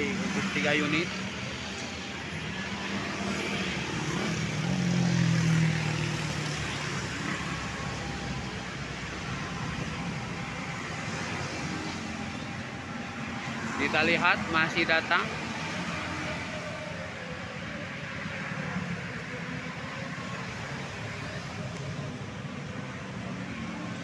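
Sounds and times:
road traffic: 0.0s - 24.0s.

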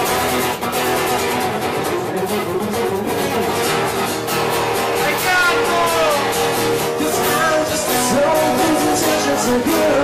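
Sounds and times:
acoustic guitars strummed: 0.0s - 10.0s.

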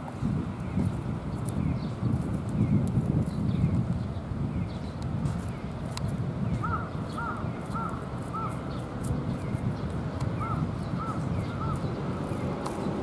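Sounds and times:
bird calling: 6.6s - 8.8s, 10.4s - 12.4s.

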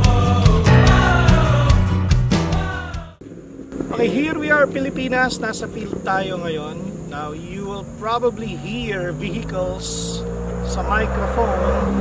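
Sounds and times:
music: 0.0s - 3.2s
man talking: 3.9s - 12.0s.

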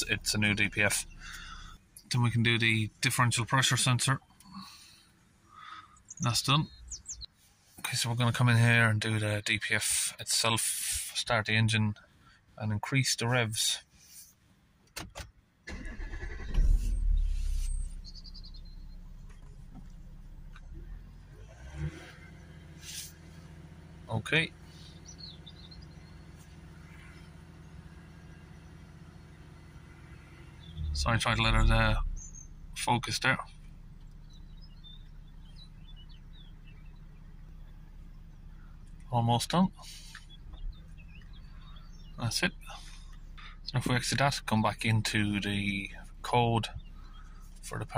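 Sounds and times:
diesel engine starting and idling: 0.0s - 5.1s, 15.6s - 47.9s
small bird chirps: 17.1s - 19.5s, 34.0s - 39.1s, 39.8s - 43.8s.

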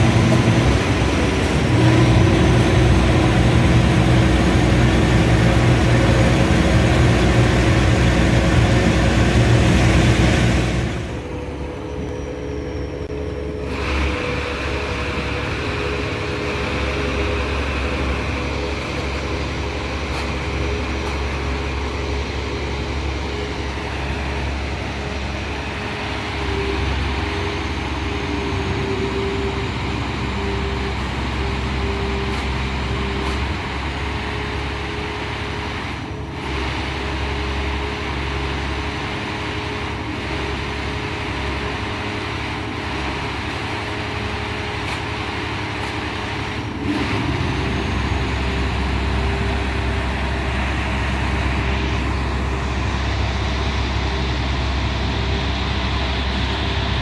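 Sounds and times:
harvester engine running: 0.0s - 57.0s.

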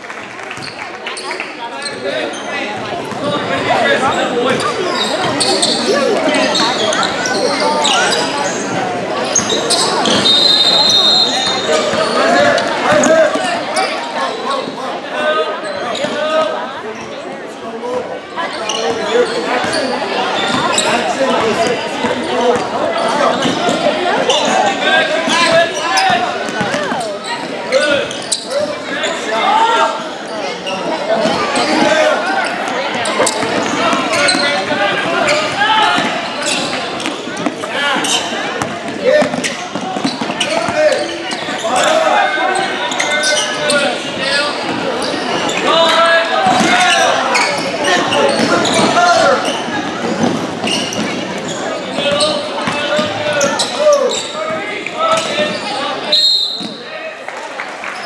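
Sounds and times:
voices echoing in a hall: 0.0s - 58.0s.

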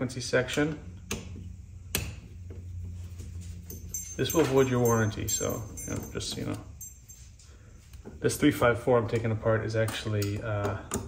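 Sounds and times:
steady low hum: 0.0s - 11.0s
faint handling sounds: 2.5s - 8.5s.

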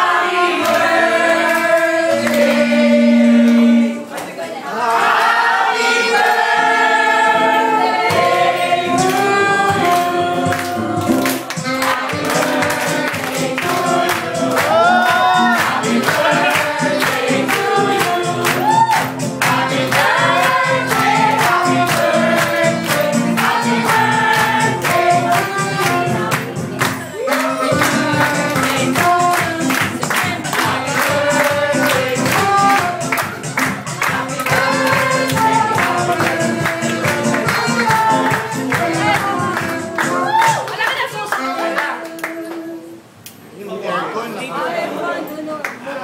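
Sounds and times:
group singing over a beat: 0.0s - 40.4s.

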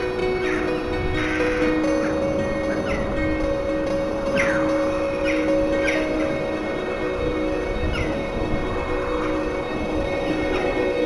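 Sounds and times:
bird cries falling in pitch: 0.0s - 10.2s
droning music: 0.0s - 11.0s.

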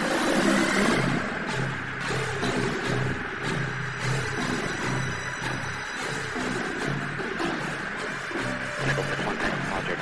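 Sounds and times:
intercom hiss: 8.7s - 10.0s.

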